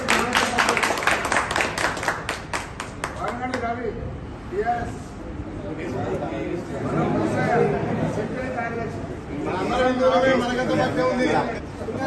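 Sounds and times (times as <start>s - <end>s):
people clapping: 0.0s - 3.8s.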